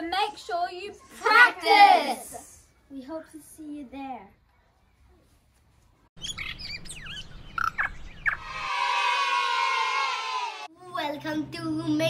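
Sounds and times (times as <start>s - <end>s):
quick bird-like chirps: 6.2s - 8.5s.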